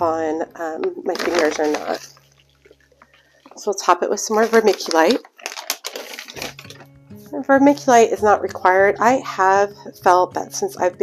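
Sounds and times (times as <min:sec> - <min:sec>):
vermiculite crackling: 0:00.0 - 0:07.0
faint background music: 0:00.0 - 0:11.0.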